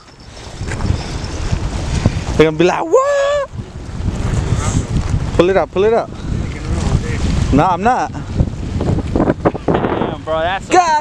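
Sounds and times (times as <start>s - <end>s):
water lapping at rocky shore: 0.0s - 11.0s
wind buffeting microphone: 0.0s - 11.0s.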